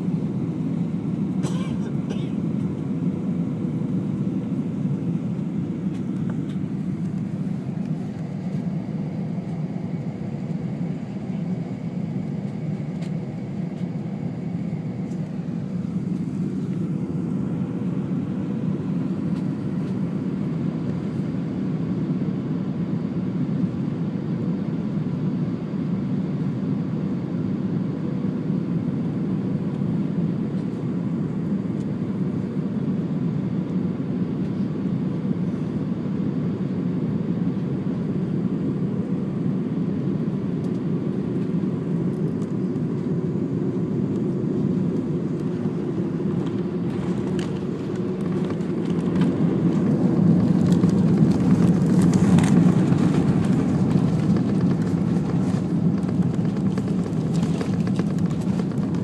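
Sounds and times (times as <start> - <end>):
jet engine and airflow rumble: 0.0 - 59.0.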